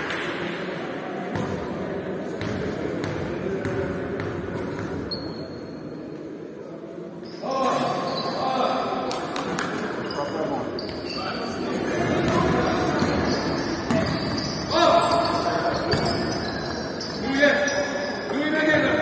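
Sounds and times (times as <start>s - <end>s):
basketball bouncing on wooden court: 2.4s - 5.0s, 15.2s - 16.5s.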